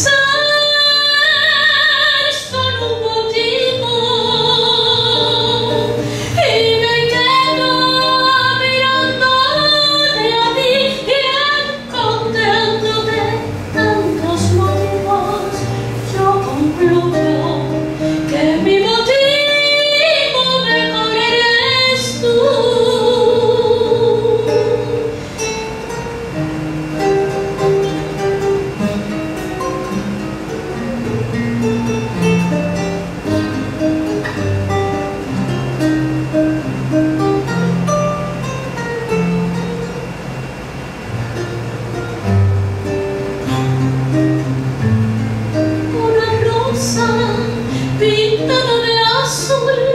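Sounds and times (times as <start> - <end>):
woman singing long notes: 0.0 - 25.2, 45.8 - 49.9
acoustic guitar: 0.0 - 49.9.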